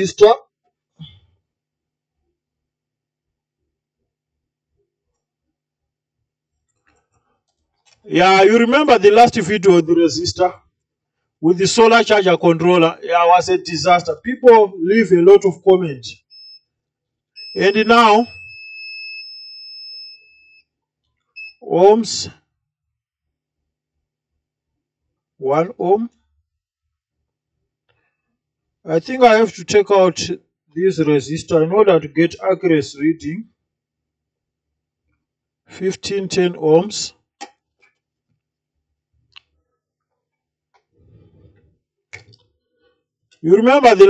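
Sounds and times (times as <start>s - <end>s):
multimeter continuity beep: 16.2s - 16.8s, 17.4s - 20.7s, 21.3s - 21.8s.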